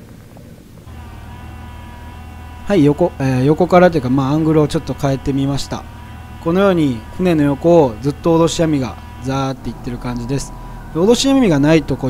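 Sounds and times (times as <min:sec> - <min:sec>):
boat machinery humming: 0:00.8 - 0:12.0.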